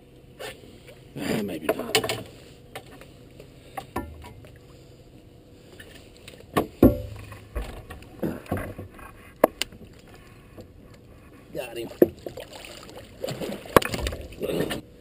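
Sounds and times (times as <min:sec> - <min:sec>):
sharp knocks: 0:06.6 - 0:08.8
fish splashing at surface: 0:12.2 - 0:14.4.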